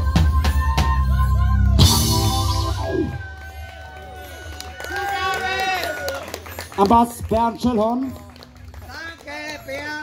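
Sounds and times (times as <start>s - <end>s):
live band holding a note: 0.0s - 3.6s.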